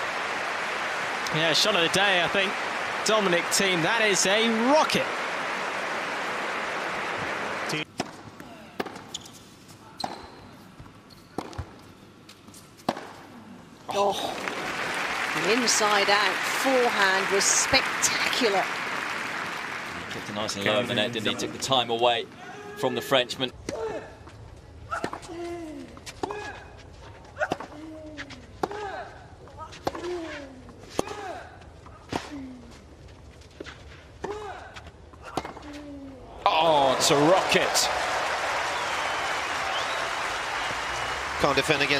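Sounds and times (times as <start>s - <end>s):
crowd applause: 0.0s - 7.8s, 14.0s - 21.2s, 36.3s - 41.9s
racket striking tennis ball: 12.8s - 13.2s.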